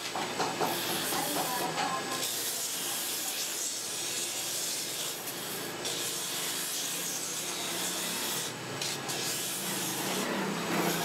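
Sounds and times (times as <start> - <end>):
wood on sanding drum hissing: 0.0 - 11.0.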